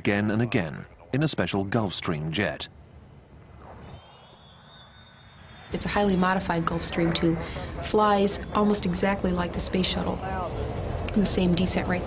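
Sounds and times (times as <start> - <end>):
faint jet aircraft rush: 2.1 - 12.0.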